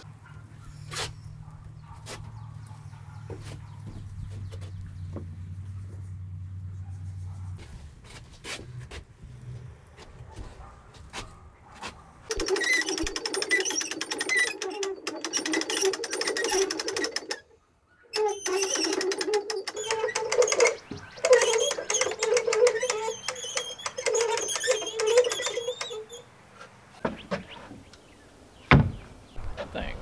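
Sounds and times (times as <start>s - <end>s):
winch ratchet clicking rapidly: 12.3s - 17.4s, 18.2s - 26.0s.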